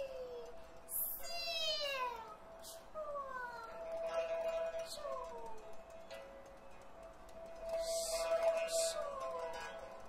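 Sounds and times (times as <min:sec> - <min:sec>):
soprano singing sliding notes: 0:07.5 - 0:10.0.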